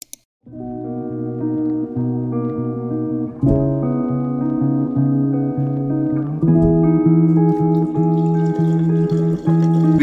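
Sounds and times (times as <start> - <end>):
plucked guitar music: 0.5 - 10.0.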